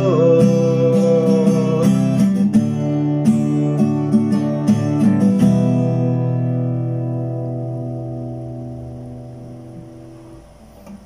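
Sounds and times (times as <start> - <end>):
acoustic guitar chord ringing: 0.0 - 11.0.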